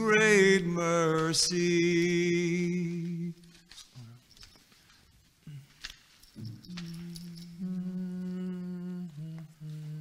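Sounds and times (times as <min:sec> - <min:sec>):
man humming held notes: 0:06.4 - 0:10.0.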